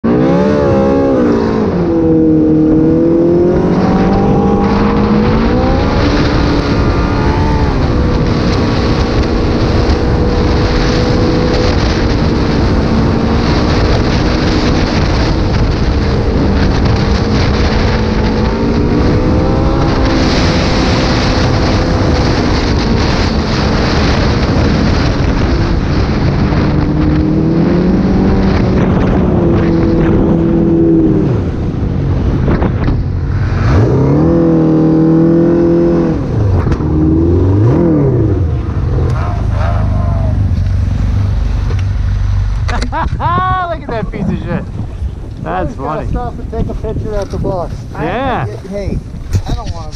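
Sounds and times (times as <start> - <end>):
snowmobile engine running: 0.0 - 49.9
snowmobile track noise: 0.0 - 49.9
wind: 0.0 - 49.9.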